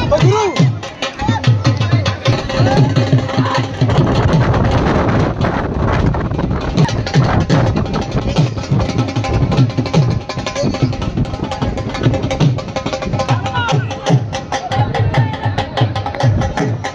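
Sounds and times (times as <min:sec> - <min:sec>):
loud music with fast drumming: 0:00.0 - 0:16.9.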